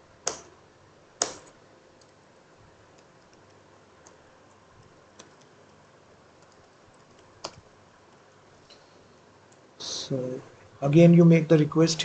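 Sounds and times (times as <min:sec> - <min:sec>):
faint keyboard typing: 0:01.2 - 0:09.7.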